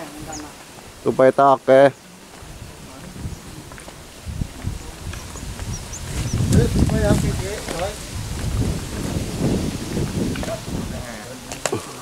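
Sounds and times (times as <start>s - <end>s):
wind rumbling on microphone: 2.2s - 12.0s.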